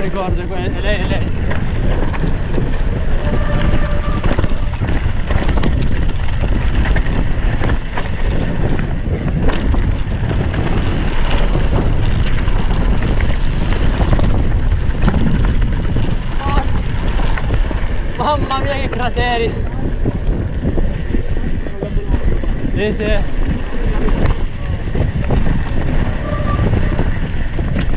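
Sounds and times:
bike knocks and rattles: 0.0 - 27.9
bike tyres rolling on dirt: 0.0 - 27.9
wind buffeting microphone: 0.0 - 27.9.

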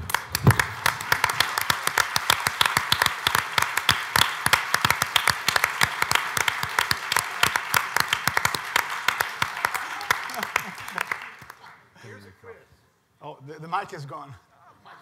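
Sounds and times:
audience applauding: 0.0 - 11.7.

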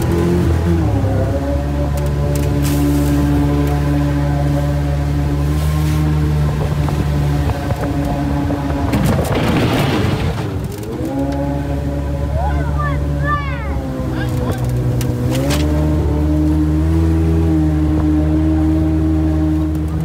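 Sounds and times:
boat motor running: 0.0 - 20.0
rough rushing noise: 5.5 - 16.3.

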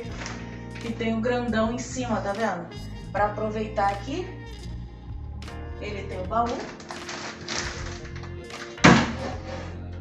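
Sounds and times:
background music: 0.0 - 10.0
mattress thumping onto bed frame: 8.8 - 9.3.

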